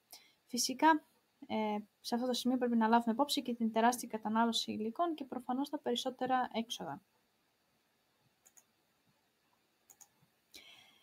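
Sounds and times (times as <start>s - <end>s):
faint noise: 0.0s - 11.0s
faint short clicks: 9.9s - 10.2s.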